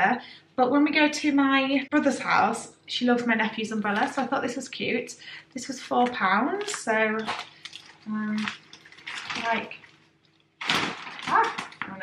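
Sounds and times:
plastic umbrella canopy crinkling: 5.9 - 12.0.

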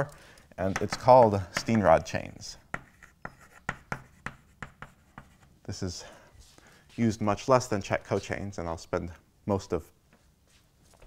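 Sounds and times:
chalk writing on a blackboard: 2.6 - 5.5.

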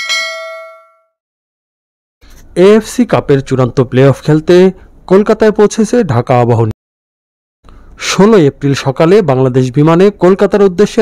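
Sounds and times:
notification bell ding: 0.0 - 1.1.

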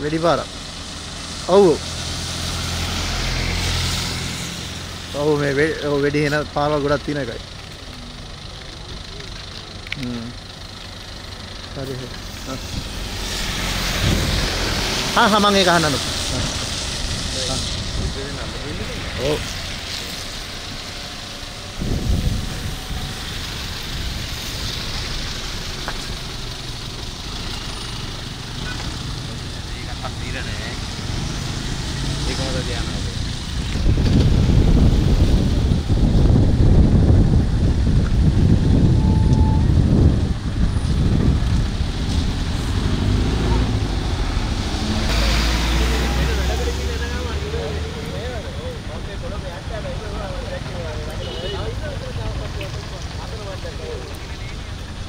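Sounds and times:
tyres hissing: 0.0 - 35.3
heavy vehicle passing: 0.0 - 55.0
road traffic on wet road: 0.0 - 55.0.

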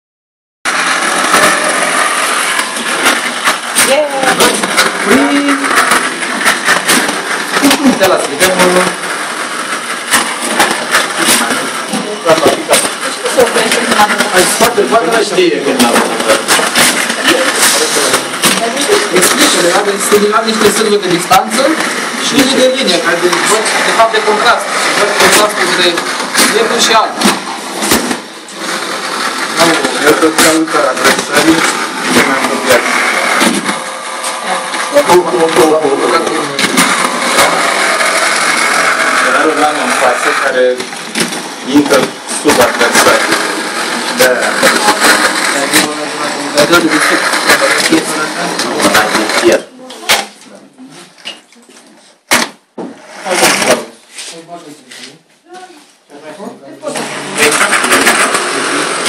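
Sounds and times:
small electric motors whirring: 0.7 - 49.7, 56.8 - 59.0
voices speaking: 3.8 - 9.8, 11.0 - 27.8, 28.4 - 51.9.

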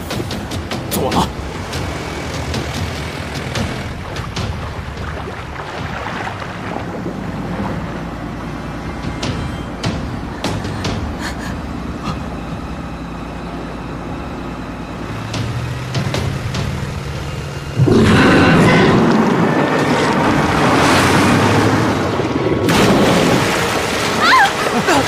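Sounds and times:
outboard motor humming: 0.0 - 25.0
loud boom: 17.8 - 19.7
monster roar: 17.8 - 19.8.

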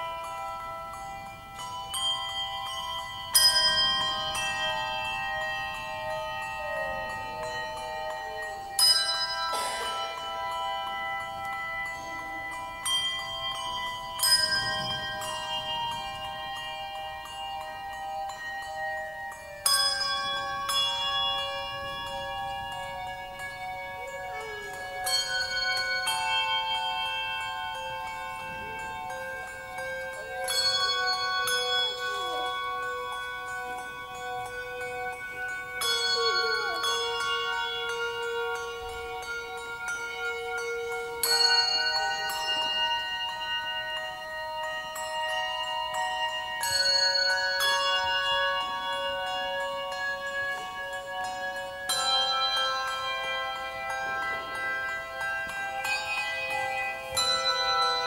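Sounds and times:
handbell choir chords: 0.0 - 58.0.

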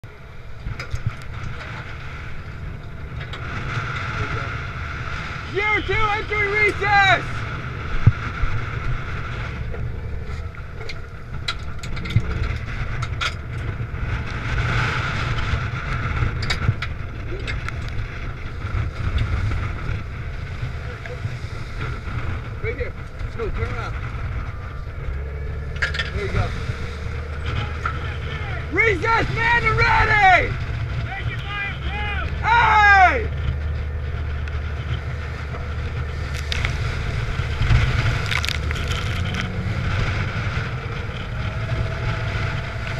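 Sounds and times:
boat engine rumble: 0.0 - 42.9
wind noise: 0.0 - 42.9.

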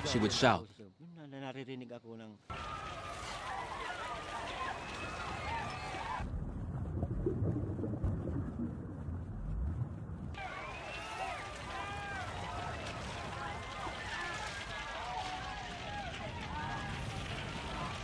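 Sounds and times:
muffled underwater rumble: 6.2 - 10.4.

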